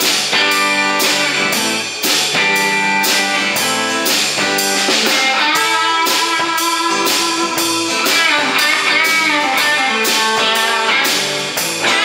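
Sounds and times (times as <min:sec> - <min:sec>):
bass guitar: 0:00.0 - 0:12.0
drum kit beat: 0:00.0 - 0:12.0
electric guitar: 0:00.0 - 0:12.0.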